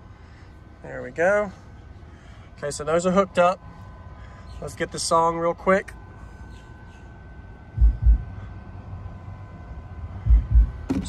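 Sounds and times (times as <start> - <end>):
low steady hum: 0.0 - 11.0
deep bass thumps: 7.7 - 8.4, 10.2 - 11.0.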